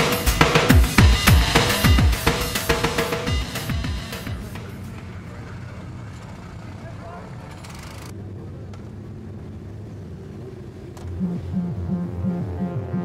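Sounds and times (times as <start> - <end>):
motorcycle engines idling: 0.0 - 11.5
people talking: 4.3 - 8.7.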